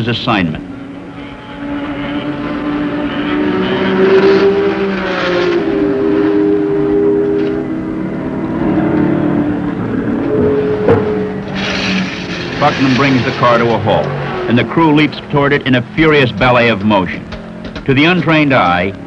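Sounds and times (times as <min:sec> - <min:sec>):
racing car engines droning: 0:00.0 - 0:19.0.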